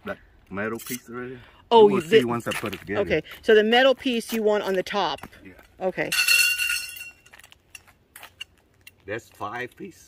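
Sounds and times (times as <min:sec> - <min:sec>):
metal poles clinking with ringing: 0:00.7 - 0:01.1, 0:01.8 - 0:02.8, 0:06.0 - 0:09.0.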